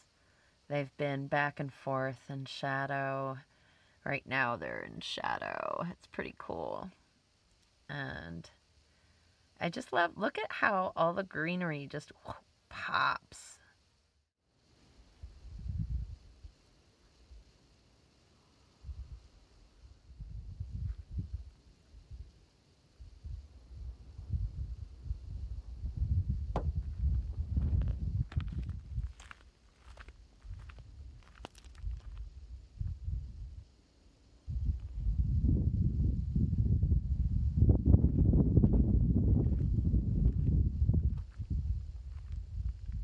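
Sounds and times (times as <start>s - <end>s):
wind buffeting microphone: 15.2s - 16.2s, 23.0s - 29.4s, 34.5s - 43.0s
footsteps crunching on gravel: 26.6s - 32.3s, 39.4s - 43.0s.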